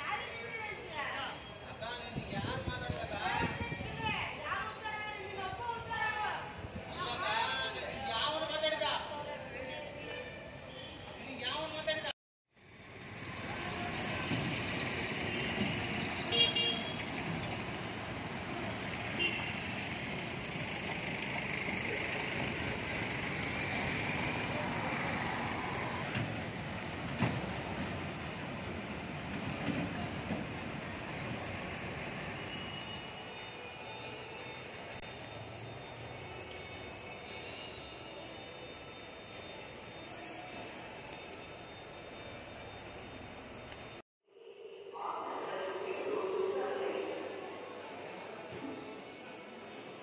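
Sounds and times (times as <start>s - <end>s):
traffic engine and road noise: 0.0s - 44.0s
short horn toot: 16.3s - 17.0s.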